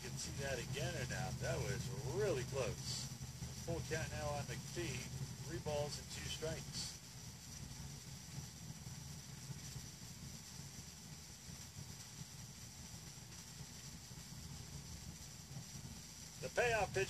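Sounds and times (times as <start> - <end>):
ballpark crowd rumble through tv speaker: 0.0 - 11.9, 16.4 - 17.0.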